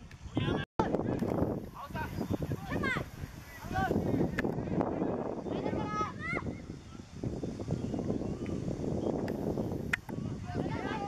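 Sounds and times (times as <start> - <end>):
outdoor noise: 0.0 - 11.0
young footballers shouting: 1.8 - 4.4, 5.4 - 6.6.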